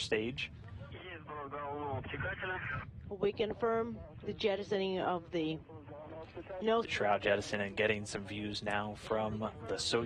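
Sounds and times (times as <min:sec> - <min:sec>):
voice over radio link: 0:00.9 - 0:02.9.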